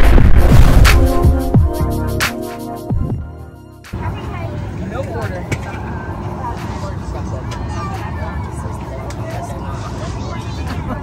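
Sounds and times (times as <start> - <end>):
airplane cabin drone: 3.9 - 11.0.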